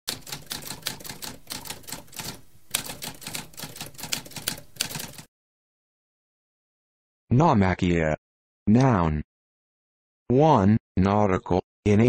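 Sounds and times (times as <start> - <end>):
typewriter keys clattering: 0.1 - 5.3.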